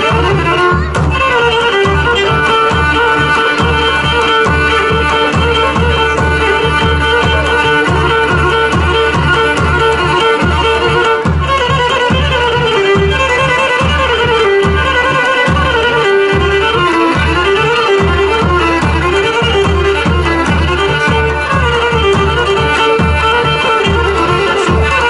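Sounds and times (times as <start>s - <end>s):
bowed lyra dance tune: 0.0s - 25.0s
drum beat: 0.0s - 25.0s.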